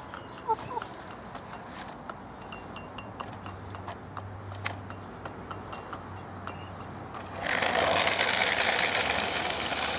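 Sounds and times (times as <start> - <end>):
toy car motor whirring: 7.3 - 9.9.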